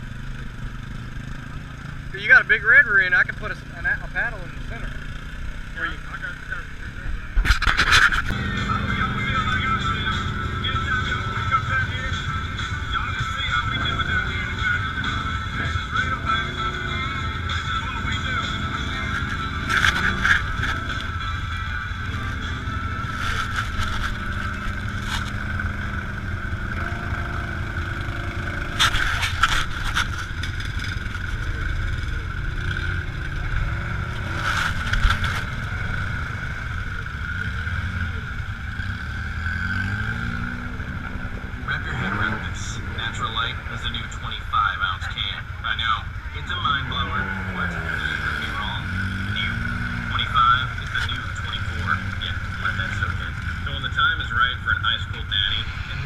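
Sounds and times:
utility vehicle engines revving: 0.0 - 56.0
high whine: 5.8 - 56.0
background voices: 8.3 - 38.8, 40.5 - 56.0.

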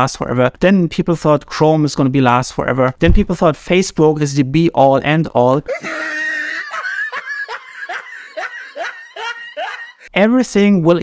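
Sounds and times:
man chuckling softly: 5.7 - 10.1.

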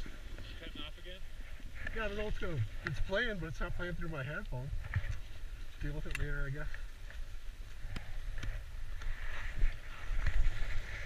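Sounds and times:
wind rumbling on microphone: 0.0 - 11.0
skis scraping over snow: 1.7 - 11.0.

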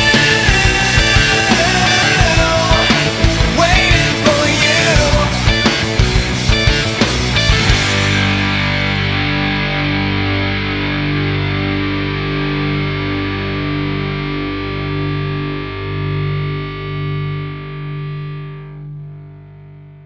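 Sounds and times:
distorted electric guitar chords: 0.0 - 20.0
held low notes: 0.0 - 20.0.

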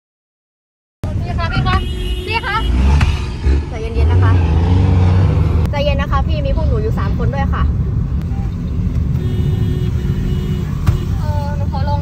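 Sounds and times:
car engine rumble: 1.0 - 12.0
road noise: 1.0 - 12.0.

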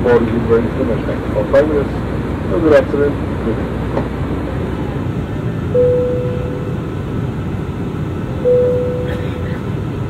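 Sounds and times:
cabin and engine rush in flight: 0.0 - 10.0
airplane cabin chime: 5.7 - 7.2, 8.3 - 10.0.

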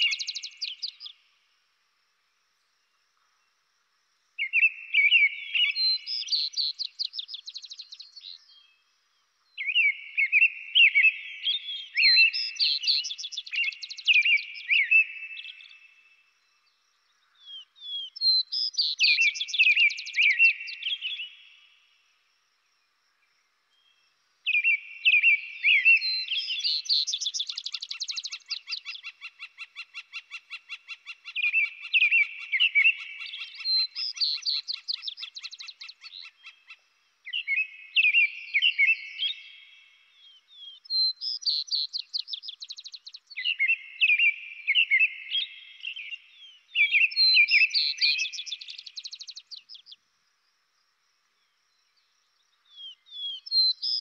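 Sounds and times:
birds singing phrased songs: 0.0 - 1.4, 4.4 - 21.9, 23.7 - 50.0, 51.3 - 54.0
rapid bird trill: 26.1 - 36.7.

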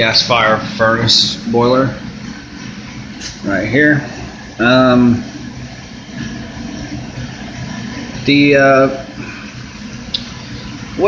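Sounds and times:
boiler machinery hum: 0.0 - 11.0.

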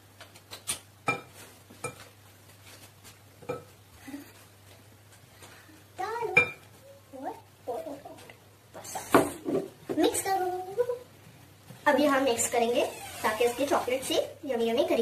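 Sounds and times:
child's voice: 6.0 - 8.3, 9.9 - 11.1, 11.9 - 15.0.

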